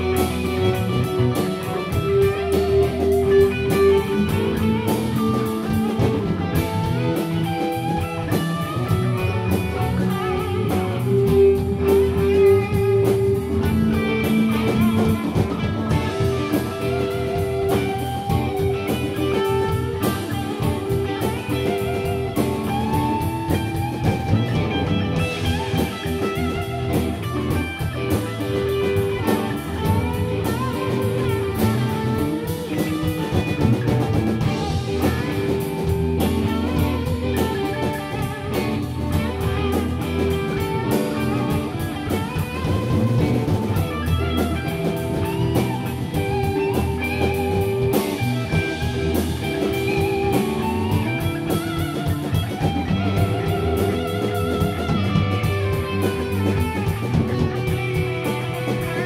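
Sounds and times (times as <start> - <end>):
bass guitar: 0.0 - 59.0
drum kit playing: 0.0 - 59.0
electric guitars playing: 0.0 - 59.0.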